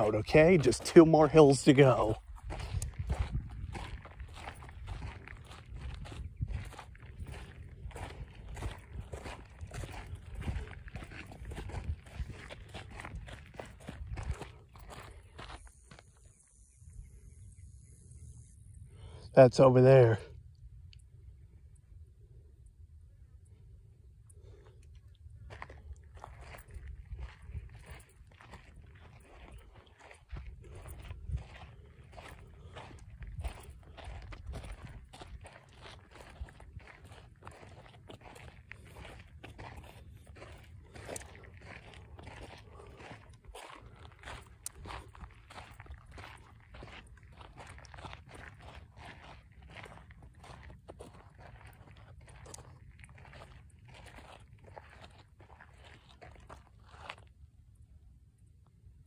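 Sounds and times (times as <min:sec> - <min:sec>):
footsteps on gravel: 0:00.0 - 0:16.7, 0:24.4 - 0:57.5.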